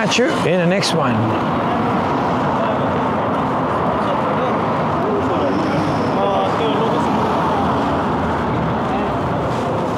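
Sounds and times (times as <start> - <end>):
city street traffic rumble: 0.0 - 9.9.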